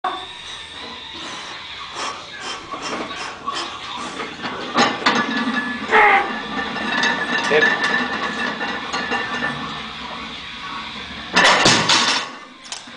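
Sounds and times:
iron plates clattering on platform: 0:04.2 - 0:09.8, 0:11.3 - 0:12.4.

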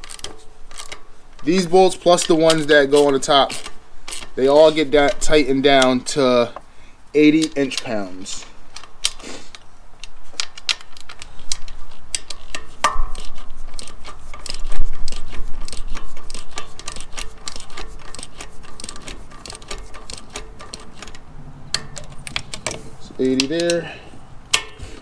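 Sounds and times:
socket ratchet clicking: 0:00.0 - 0:06.7, 0:07.3 - 0:25.0.

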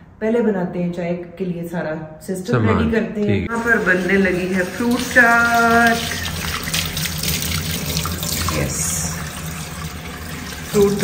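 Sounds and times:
water splashing on fruit: 0:04.7 - 0:09.4.

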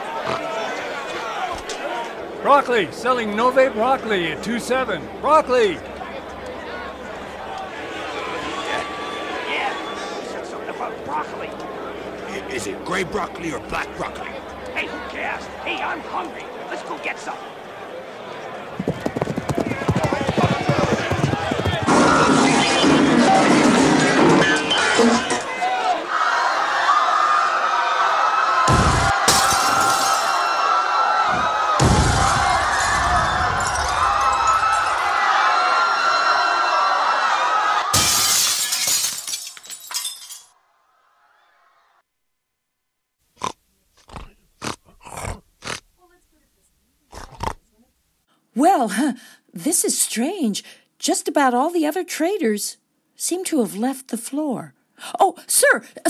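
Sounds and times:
crowd shouting: 0:00.0 - 0:02.4, 0:05.1 - 0:38.2
stampede of hoofbeats: 0:18.8 - 0:22.3
people shouting: 0:25.1 - 0:38.2
crash of shattering: 0:28.7 - 0:30.5, 0:31.8 - 0:35.0, 0:37.9 - 0:40.5.

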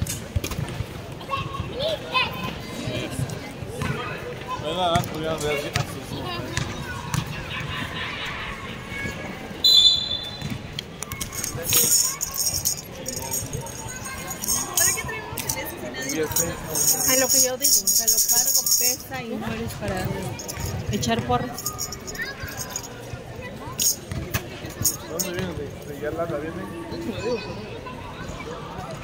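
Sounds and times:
sharp whistle blast: 0:09.6 - 0:10.5
ball bouncing: 0:10.2 - 0:11.6, 0:19.4 - 0:21.8, 0:24.0 - 0:24.5.

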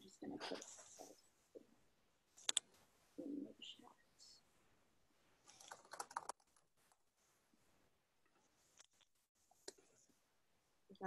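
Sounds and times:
typing on computer keyboard: 0:05.5 - 0:06.6.

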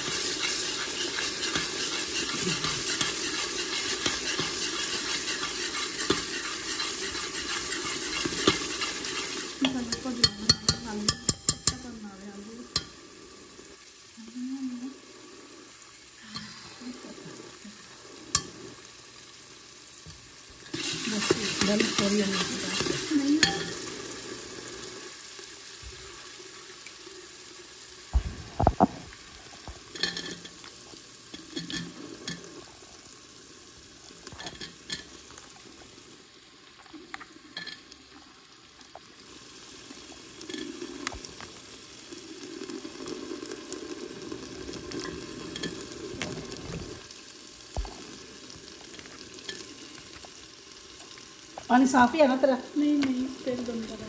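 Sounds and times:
curry sizzling in a pan: 0:00.0 - 0:54.0
spoon knocking against pan: 0:09.6 - 0:11.8.

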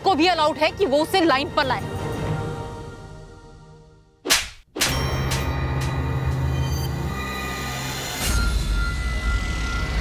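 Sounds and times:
background music: 0:00.0 - 0:10.0
sharp slap crack: 0:04.2 - 0:05.0.

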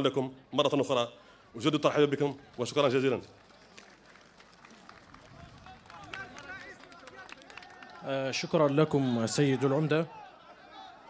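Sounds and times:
scattered applause: 0:01.8 - 0:11.0
crowd voices: 0:03.4 - 0:11.0.

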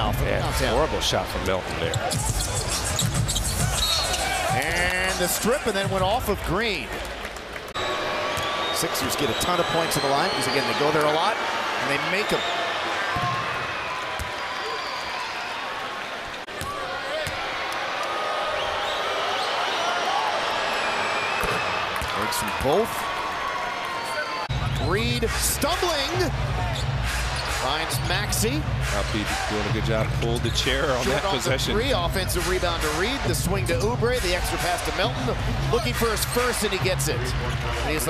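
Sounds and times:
basketball bouncing on court: 0:13.1 - 0:13.5.

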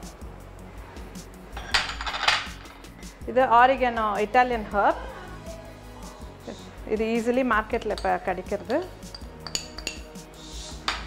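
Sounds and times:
spoon clinking on glass dish: 0:07.9 - 0:10.1.

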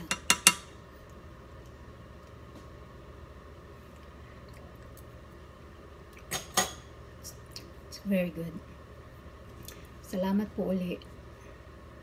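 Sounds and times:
metal fork clinking on saucepan: 0:00.0 - 0:00.7
low room hum: 0:00.0 - 0:12.0.

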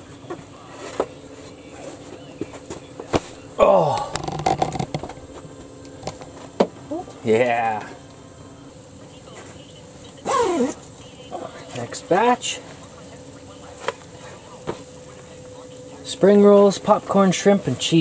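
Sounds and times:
faint hum: 0:00.0 - 0:18.0.

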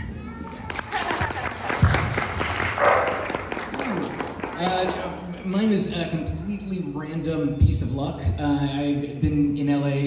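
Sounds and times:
people applauding: 0:00.4 - 0:05.3.

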